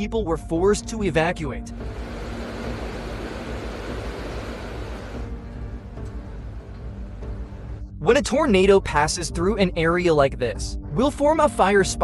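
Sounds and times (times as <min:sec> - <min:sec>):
low background music: 0:00.0 - 0:12.0
river water rushing: 0:01.8 - 0:05.3.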